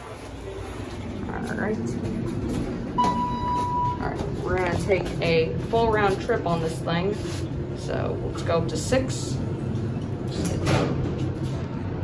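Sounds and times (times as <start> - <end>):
high electronic elevator beep: 3.0 - 4.0.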